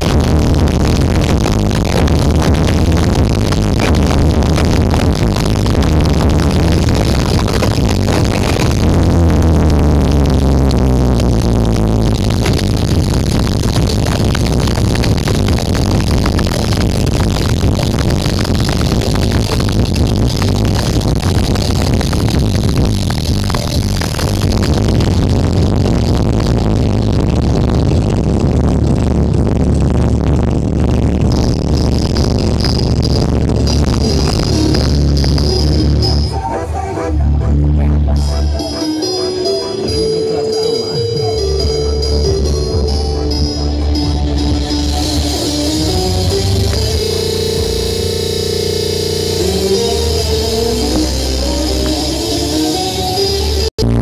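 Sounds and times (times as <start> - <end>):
loud electronic dance music: 0.0 - 54.0.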